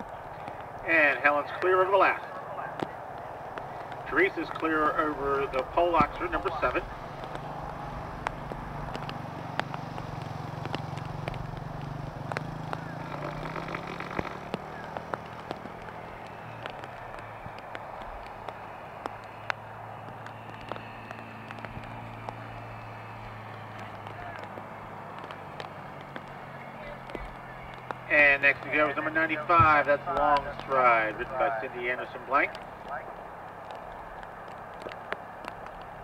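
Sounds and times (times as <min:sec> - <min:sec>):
distant voices: 0:00.0 - 0:36.0
low engine hum: 0:00.0 - 0:36.0
faint ticks: 0:06.4 - 0:24.6.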